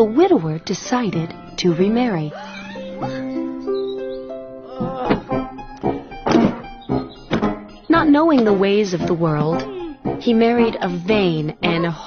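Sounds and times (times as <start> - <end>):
cartoon background music: 0.0 - 12.0
luggage thunking on wooden floor: 4.8 - 7.7.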